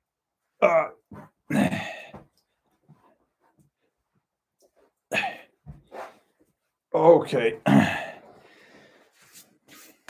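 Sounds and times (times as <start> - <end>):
man clearing throat: 0.6 - 2.2, 5.1 - 5.5, 7.6 - 8.2.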